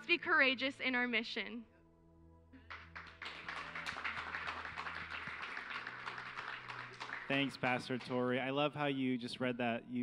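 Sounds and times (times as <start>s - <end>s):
congregation applauding: 2.6s - 8.6s.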